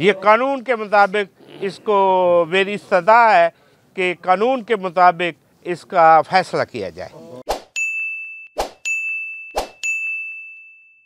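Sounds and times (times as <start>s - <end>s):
high ringing chime: 7.8s - 11.0s.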